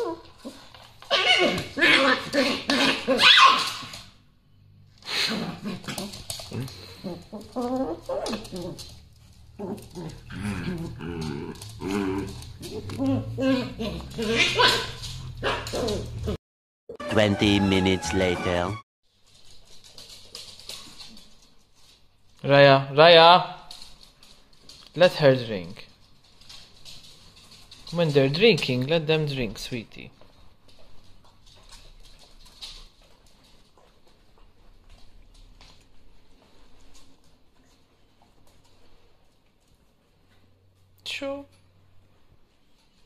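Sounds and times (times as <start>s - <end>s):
paws pattering on floor: 0.0s - 4.2s, 5.7s - 16.4s, 19.1s - 22.5s, 23.5s - 41.0s.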